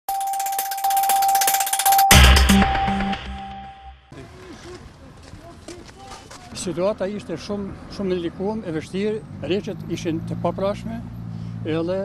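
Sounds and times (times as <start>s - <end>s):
steady high electronic tone: 0.1s - 4.1s.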